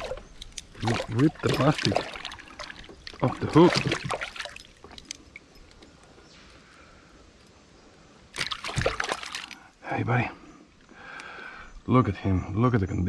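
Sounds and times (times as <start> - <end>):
water splashing: 0.0 - 5.8, 8.3 - 9.7
water dripping: 0.0 - 6.2, 8.3 - 9.7.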